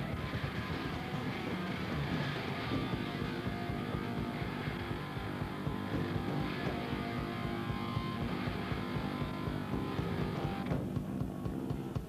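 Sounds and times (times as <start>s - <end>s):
fast bass drum strokes: 0.0s - 12.0s
heavy metal band playing: 0.0s - 12.0s.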